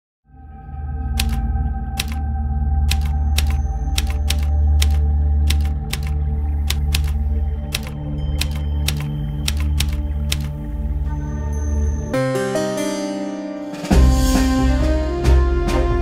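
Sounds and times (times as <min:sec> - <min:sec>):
typewriter keys clicking: 0:01.2 - 0:01.4, 0:02.0 - 0:02.2, 0:02.9 - 0:10.5.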